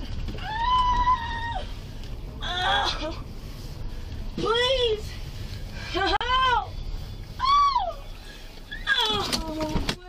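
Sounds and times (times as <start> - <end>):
woman wailing moans: 2.4 - 3.2.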